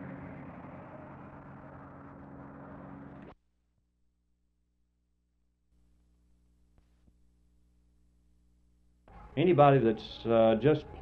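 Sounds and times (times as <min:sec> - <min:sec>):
steady low hum: 0:00.0 - 0:03.4, 0:05.0 - 0:11.0.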